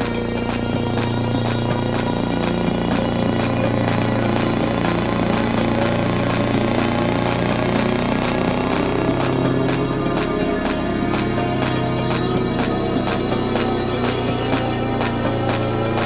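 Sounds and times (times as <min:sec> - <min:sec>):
electronic dance music beat: 0:00.0 - 0:16.0
sustained low bass tone: 0:00.0 - 0:16.0.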